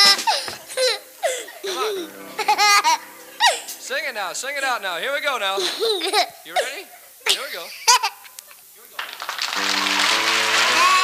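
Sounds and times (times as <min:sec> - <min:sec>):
small boy giggling: 0:00.0 - 0:03.7, 0:05.6 - 0:08.7.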